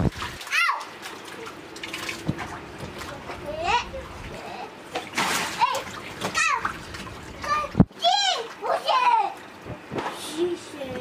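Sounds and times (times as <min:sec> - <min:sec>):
water splashing: 0:00.0 - 0:11.0.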